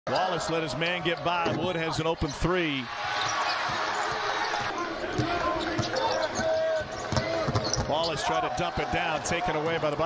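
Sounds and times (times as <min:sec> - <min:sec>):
arena noise: 0:00.1 - 0:10.0.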